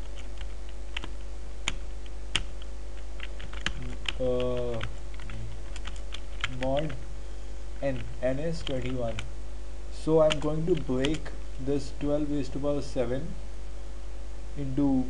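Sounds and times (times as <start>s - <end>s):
keyboard typing: 0.0s - 7.0s, 7.8s - 9.3s, 10.2s - 11.3s
electrical hum: 0.0s - 15.0s.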